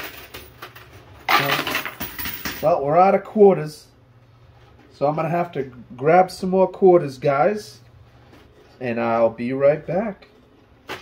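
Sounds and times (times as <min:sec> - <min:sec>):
coins clinking and rattling: 0:00.0 - 0:02.7.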